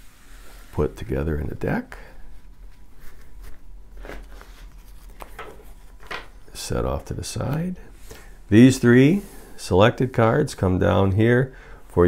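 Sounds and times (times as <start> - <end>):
low steady hum: 0.0 - 12.0
cards being handled: 2.4 - 7.7.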